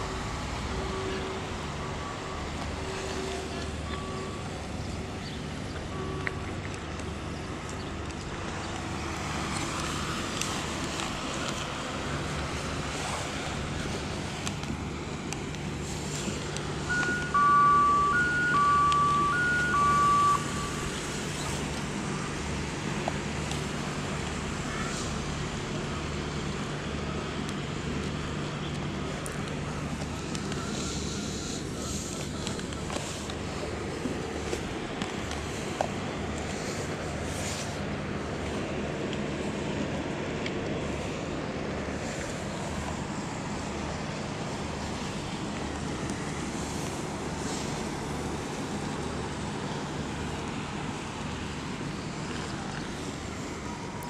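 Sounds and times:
road traffic hum: 0.0 - 54.0
two-tone horn: 16.9 - 20.9.

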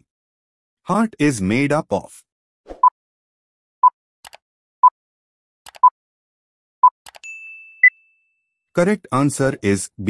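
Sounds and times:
bright ringing ding: 7.2 - 8.5.

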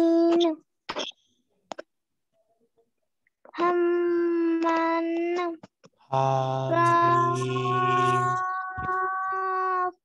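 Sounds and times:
child holding long vowel: 6.6 - 10.0.

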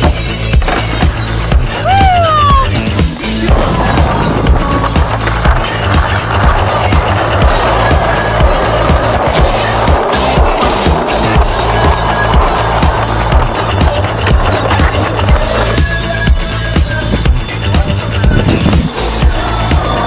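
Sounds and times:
skateboard wheels rolling on asphalt: 0.0 - 20.0.

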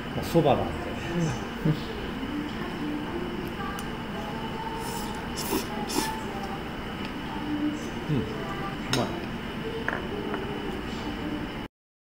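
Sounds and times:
restaurant background noise: 0.0 - 11.7.

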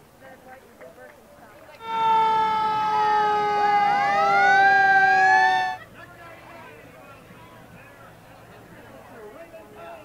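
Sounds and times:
fire truck horns: 1.8 - 5.8.

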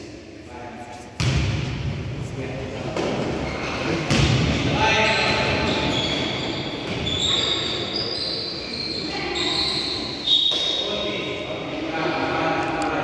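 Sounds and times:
basketball thudding: 1.2 - 1.8, 4.1 - 4.6
sneakers squeaking on gym floor: 4.9 - 11.4.

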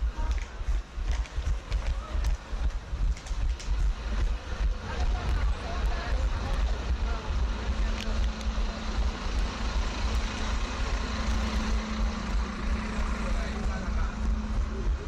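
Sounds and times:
bus engine droning: 0.0 - 15.0
wind rumble on microphone: 0.0 - 15.0.

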